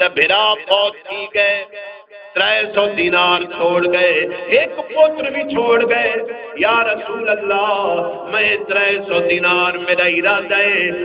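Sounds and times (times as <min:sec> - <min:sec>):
man intoning sing-song sermon: 0:00.0 - 0:11.0.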